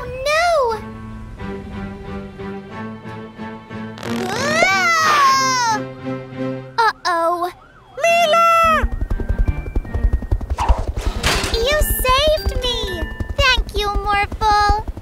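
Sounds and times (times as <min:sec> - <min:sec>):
short rushing noise bursts: 0:03.9 - 0:05.5
cartoon music: 0:04.0 - 0:08.9
girl's wordless sliding exclamations: 0:04.2 - 0:05.8.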